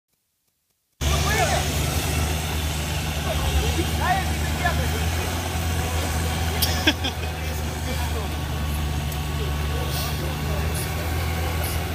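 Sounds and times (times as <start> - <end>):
car engine running in water: 1.0 - 11.9
onlookers shouting: 1.0 - 11.9.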